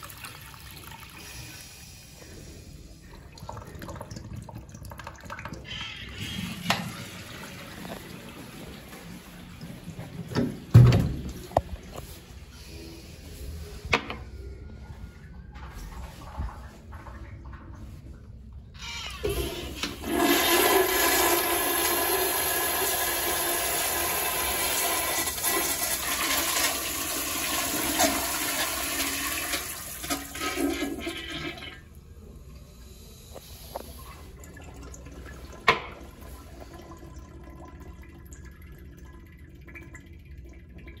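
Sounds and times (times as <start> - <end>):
toilet flushing water rush: 3.0 - 12.2, 18.8 - 32.3
water trickle: 34.1 - 41.0.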